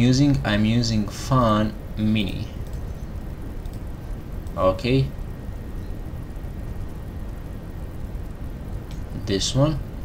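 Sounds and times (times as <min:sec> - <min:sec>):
low room and microphone noise: 0:00.0 - 0:10.0.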